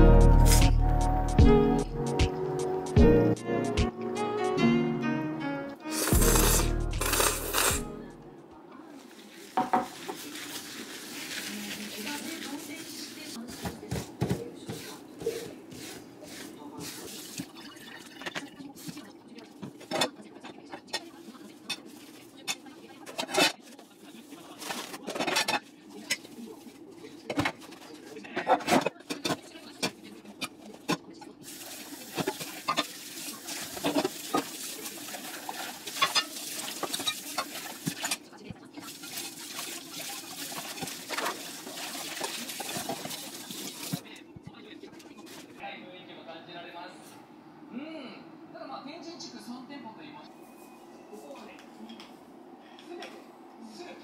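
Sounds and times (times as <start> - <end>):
dishes knocking and clinking: 9.6 - 10.0, 13.5 - 15.4
tap running over dishes: 13.5 - 16.0.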